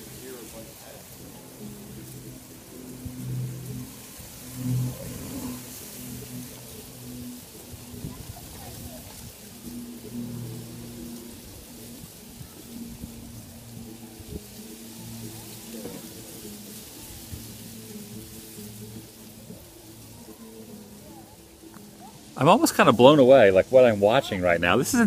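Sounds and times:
faint background music: 0.0 - 25.0
murmur of distant voices: 0.0 - 25.0.

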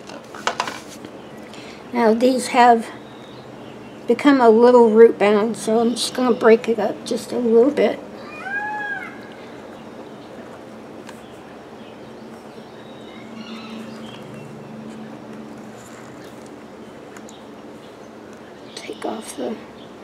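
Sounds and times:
animal call: 8.2 - 9.4, 12.9 - 14.6
hands rustling potting soil: 13.7 - 17.8.

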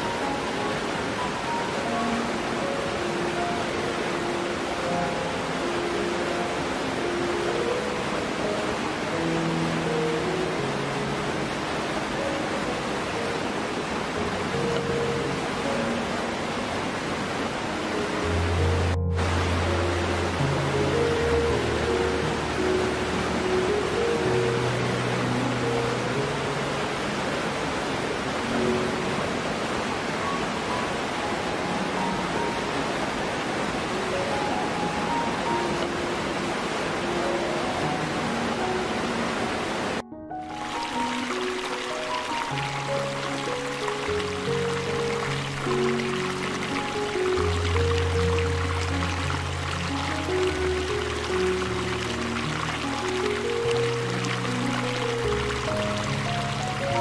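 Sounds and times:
soft slow background music: 0.0 - 57.0
waterfall rushing: 0.0 - 57.0.

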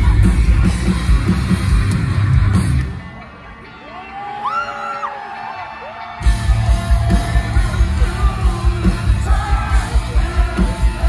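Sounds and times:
distorted electric guitars: 0.0 - 11.0
drums: 0.0 - 11.0.

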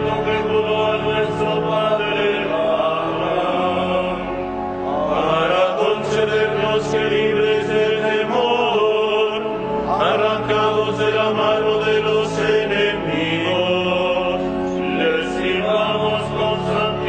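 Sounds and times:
voices singing liturgical chant: 0.0 - 17.0.

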